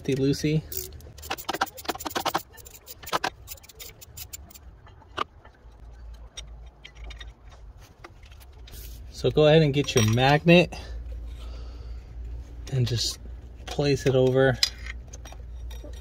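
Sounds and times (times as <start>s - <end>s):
ratchet wrench clicking: 0.0s - 4.6s.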